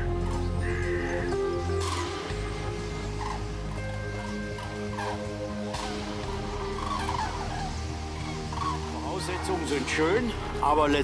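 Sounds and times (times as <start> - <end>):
background music: 0.0 - 11.0
flock of birds calling: 0.0 - 11.0.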